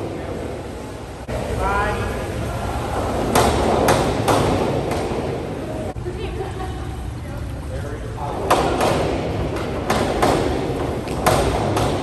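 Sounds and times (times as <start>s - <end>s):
sharp knocks: 3.3s - 5.4s, 8.4s - 12.0s.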